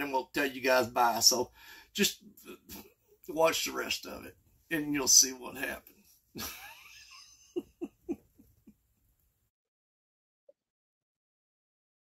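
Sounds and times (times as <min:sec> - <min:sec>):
man chuckling quietly: 0:06.4 - 0:08.7.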